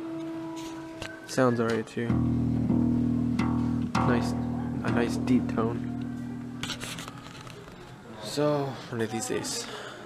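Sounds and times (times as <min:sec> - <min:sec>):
acoustic bass guitar plucked: 0:02.0 - 0:07.4.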